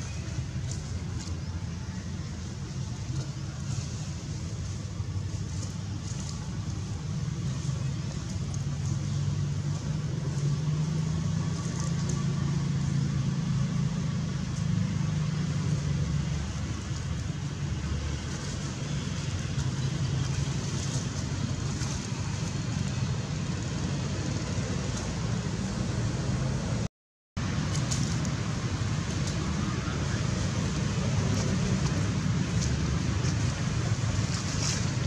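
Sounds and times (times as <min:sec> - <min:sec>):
low engine rumble: 0:00.0 - 0:35.0.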